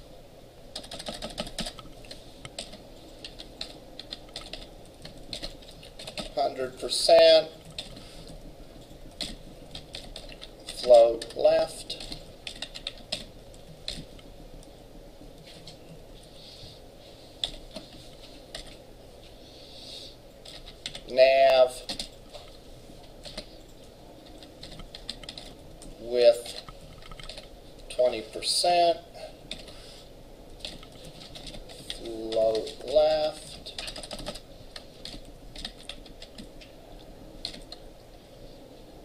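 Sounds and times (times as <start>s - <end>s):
person's voice: 6.3s - 7.6s, 10.6s - 12.2s, 21.0s - 22.0s, 26.0s - 26.7s, 27.9s - 29.3s, 31.8s - 33.9s.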